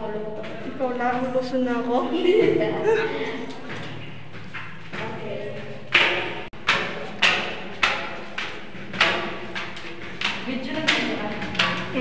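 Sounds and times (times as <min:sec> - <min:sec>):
flip-flop footsteps on metal stairs: 0:00.0 - 0:12.0.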